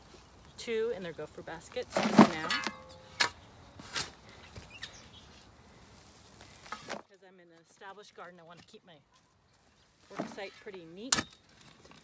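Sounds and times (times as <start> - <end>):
shovel scraping soil: 1.8 - 4.2, 10.0 - 12.0
faint bird chirps: 4.6 - 5.4.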